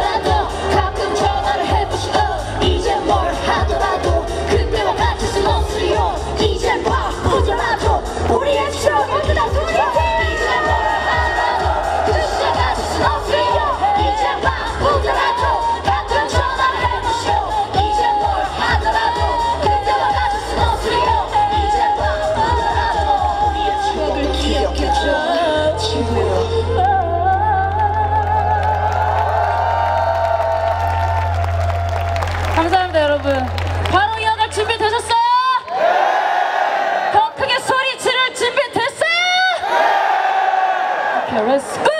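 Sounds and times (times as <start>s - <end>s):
crowd cheering and shouting: 0.0s - 26.4s, 27.8s - 41.9s
steady bass line: 0.0s - 35.4s
live pop music: 0.0s - 35.5s.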